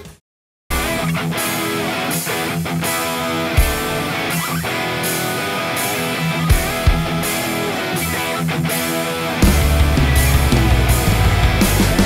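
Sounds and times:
drums steady beat: 0.0 - 12.0
electric guitar: 0.0 - 12.0.

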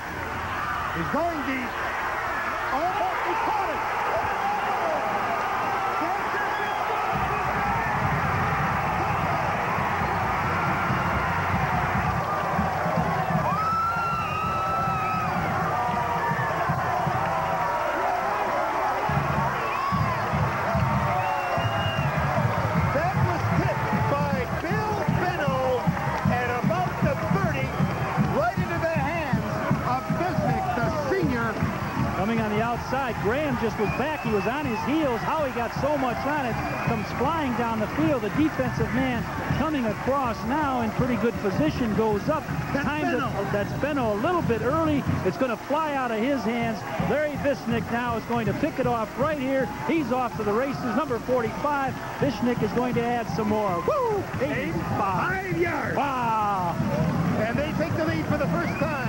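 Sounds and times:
stadium crowd cheering: 0.0 - 59.0
music playing: 7.0 - 59.0.

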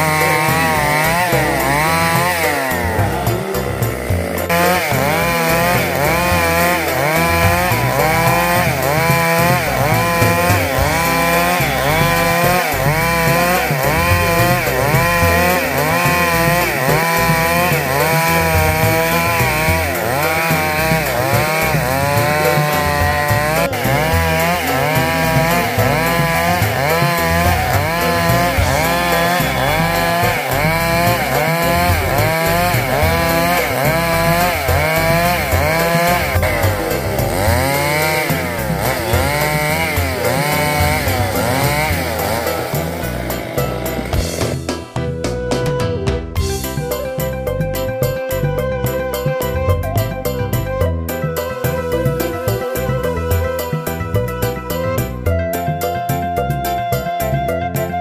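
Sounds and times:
chainsaw ripping a log: 0.0 - 44.8.

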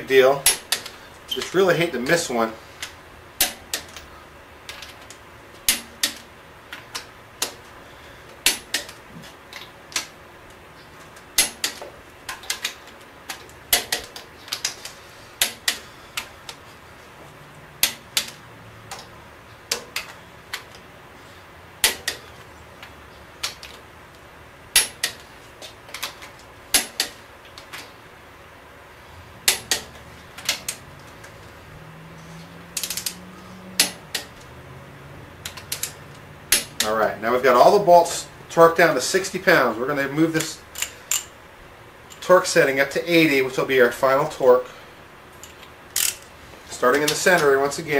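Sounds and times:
torque wrench clicks: 40.4 - 41.3, 45.4 - 46.3.

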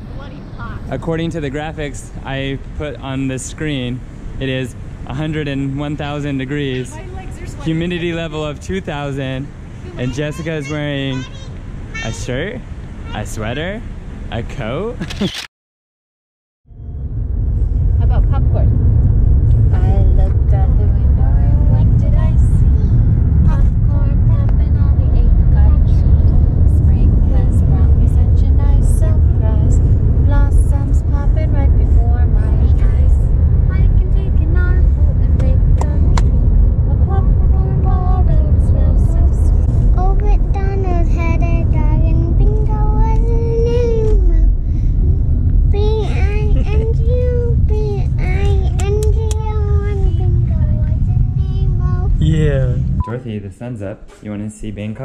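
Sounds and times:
car road and engine rumble: 0.0 - 15.4, 16.7 - 55.0
small child babbling: 9.9 - 12.2, 40.0 - 44.5, 45.8 - 50.4.

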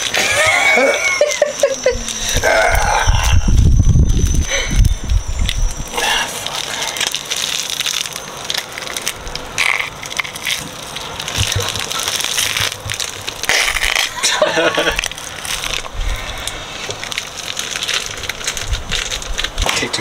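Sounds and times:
wet squelching: 0.0 - 19.7
plastic bag crinkling: 0.0 - 20.0.

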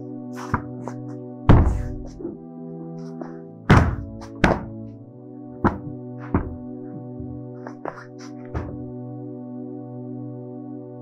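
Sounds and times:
background music pad: 0.0 - 11.0.

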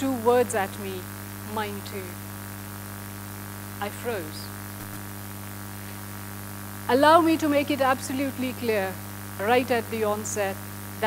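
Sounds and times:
person speaking: 0.0 - 2.2, 3.8 - 5.0, 6.9 - 10.6
electrical mains hum: 0.0 - 11.0.

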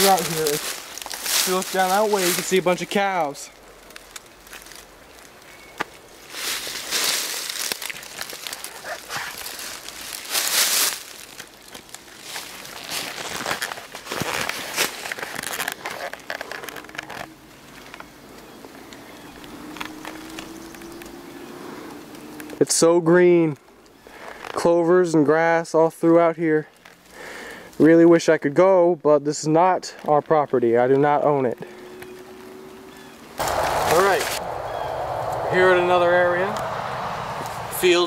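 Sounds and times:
footsteps crunching through dry leaves: 0.0 - 16.9, 17.6 - 22.3, 33.4 - 35.5
twigs snapping: 0.0 - 21.2.

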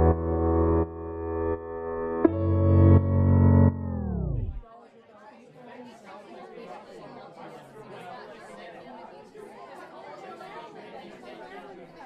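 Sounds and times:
crowd chatter: 3.7 - 12.0.

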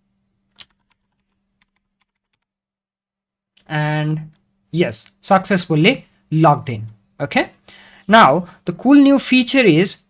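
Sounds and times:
keyboard typing: 0.5 - 2.5.

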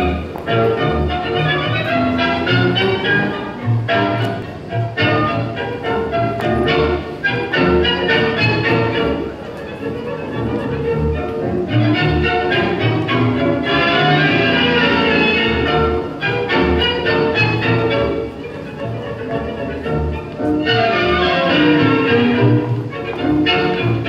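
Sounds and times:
tango orchestra music with violins: 0.0 - 24.0.

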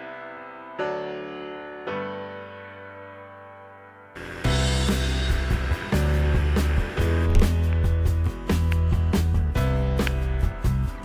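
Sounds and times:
music with heavy bass and drums: 4.2 - 11.0.

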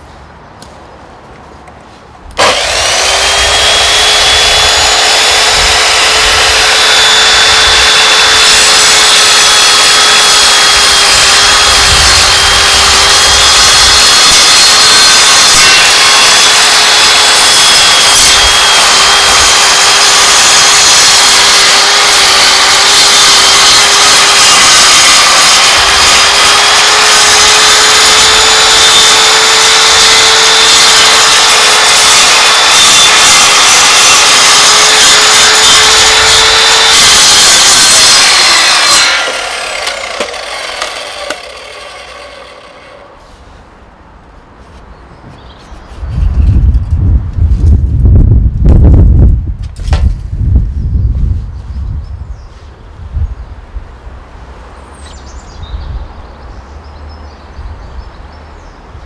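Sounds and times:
blade grinding wood: 2.3 - 43.7
saw motor whine: 2.4 - 43.4.

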